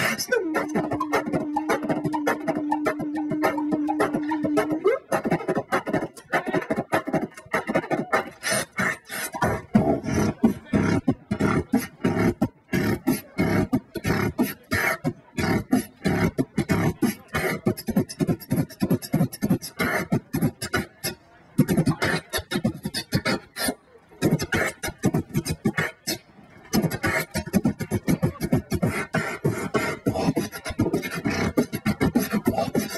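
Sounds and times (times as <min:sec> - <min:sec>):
person beatboxing into a microphone: 0:00.0 - 0:32.9.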